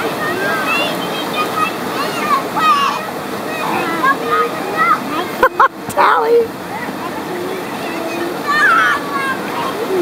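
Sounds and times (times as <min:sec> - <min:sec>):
voices calling: 0:00.0 - 0:10.0
whitewater rushing: 0:00.0 - 0:10.0.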